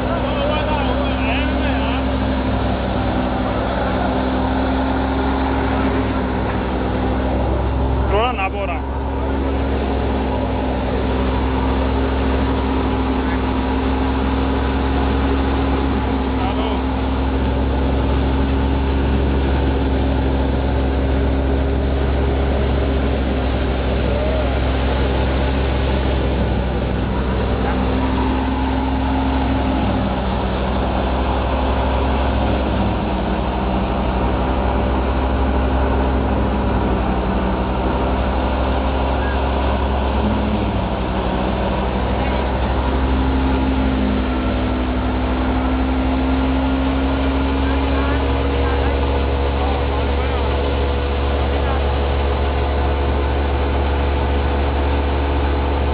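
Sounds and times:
engine running steadily: 0.0s - 55.9s.

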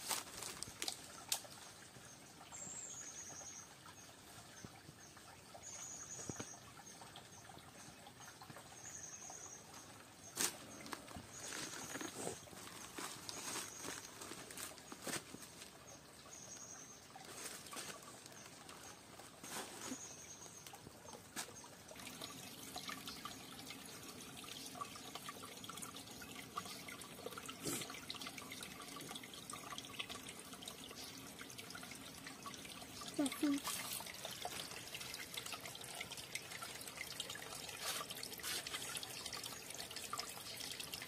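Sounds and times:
stream trickling and splashing: 0.0s - 41.0s
footsteps on dry leaves: 11.4s - 15.6s.

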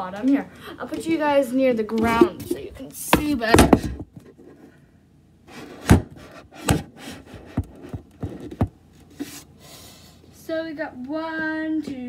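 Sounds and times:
plastic cups sliding: 5.5s - 9.5s.

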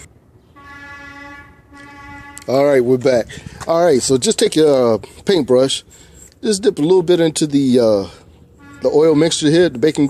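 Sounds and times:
horn-like tone: 0.6s - 2.8s, 8.6s - 9.4s.

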